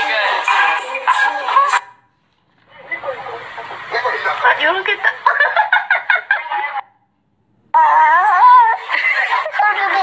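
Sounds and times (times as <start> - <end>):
room noise: 2.0 - 7.7.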